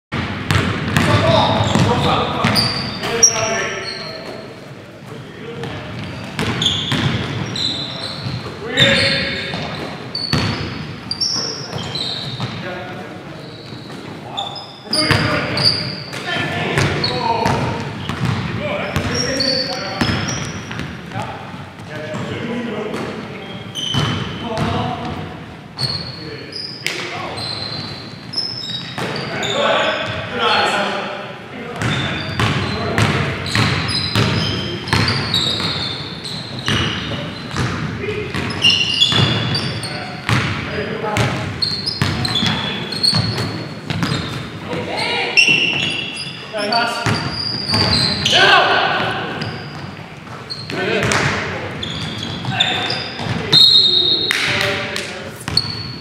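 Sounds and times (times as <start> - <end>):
basketball bouncing on hardwood: 0.2 - 2.6, 6.0 - 7.5, 16.8 - 19.2, 40.3 - 40.6, 42.0 - 44.3
sneakers squeaking: 0.2 - 56.0
players' voices calling out: 25.8 - 55.9.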